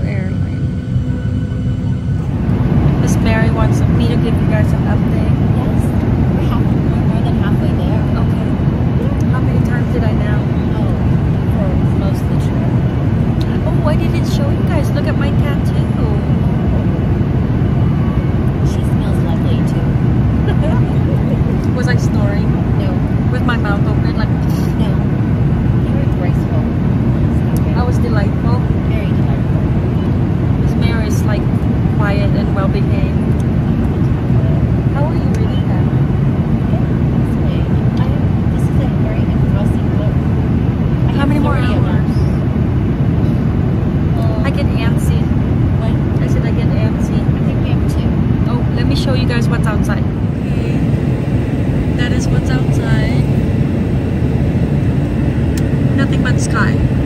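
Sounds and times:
airliner cabin rumble: 0:00.0 - 0:57.0
faint passenger voices: 0:00.0 - 0:57.0.

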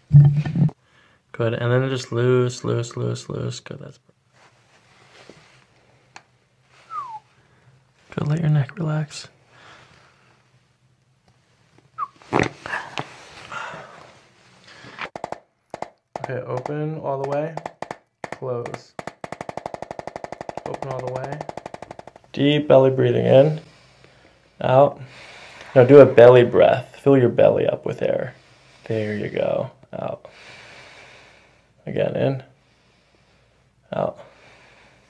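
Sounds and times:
quiet breathing: 0:00.7 - 0:01.4, 0:04.3 - 0:08.2, 0:09.3 - 0:10.8, 0:12.6 - 0:15.1, 0:23.2 - 0:26.3, 0:28.2 - 0:31.8, 0:32.5 - 0:35.0
rapid sharp clicks of adjusting tool: 0:15.0 - 0:22.4.

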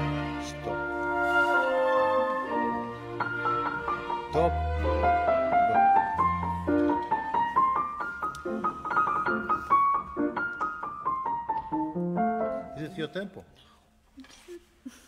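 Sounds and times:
grand piano playing: 0:00.0 - 0:13.3.

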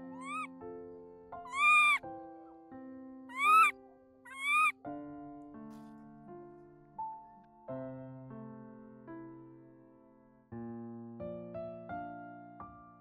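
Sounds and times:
baby macaque high calls: 0:00.0 - 0:00.5, 0:01.5 - 0:02.0, 0:03.3 - 0:03.7, 0:04.3 - 0:04.7
soft piano music: 0:00.0 - 0:13.0.

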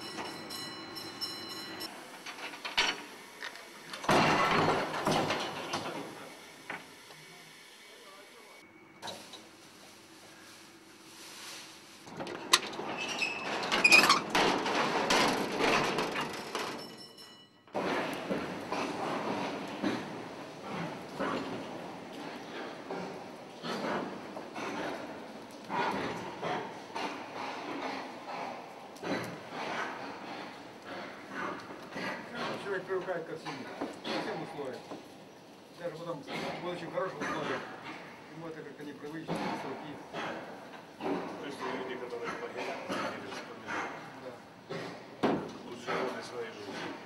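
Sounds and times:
lift machinery rumbling and clattering: 0:12.1 - 0:17.1.

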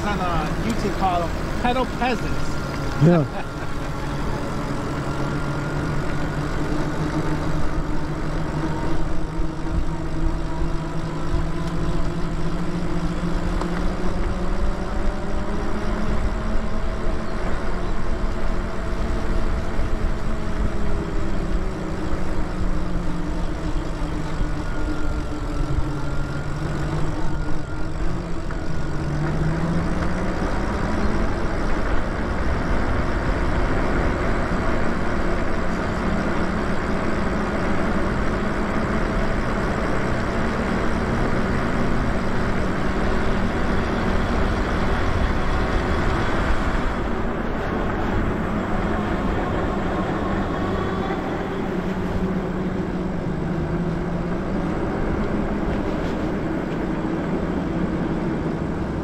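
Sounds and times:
electric bike motor whining: 0:00.0 - 0:59.0
wind rumble on microphone: 0:00.0 - 0:59.0.

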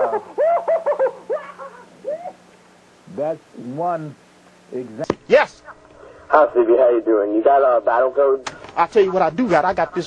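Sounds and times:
high-pitched hooting laughter: 0:00.0 - 0:02.4.

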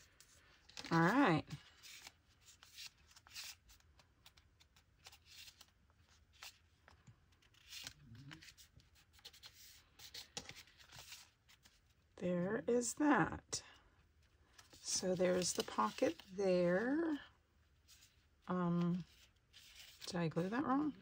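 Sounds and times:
paper rustling: 0:00.0 - 0:12.0, 0:14.4 - 0:17.2, 0:18.8 - 0:21.0.

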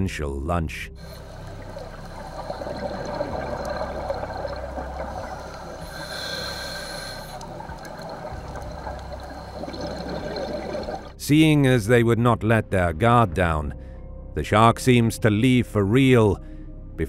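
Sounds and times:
underwater water rush: 0:01.0 - 0:11.2.

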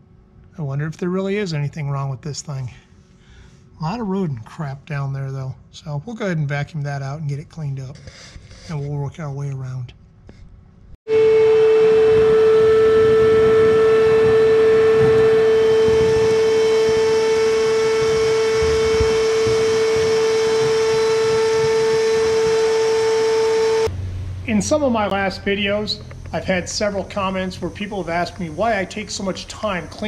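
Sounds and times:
shop vac motor whining: 0:11.1 - 0:30.0
rushing air: 0:11.3 - 0:24.9.

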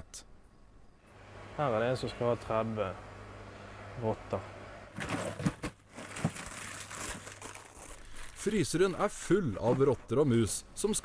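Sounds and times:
plastic bags crinkling: 0:05.0 - 0:10.1.

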